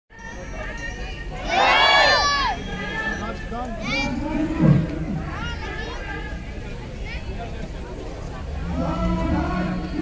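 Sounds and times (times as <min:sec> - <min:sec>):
crowd murmuring: 0:00.1 - 0:10.0
crowd shouting together: 0:01.4 - 0:03.2.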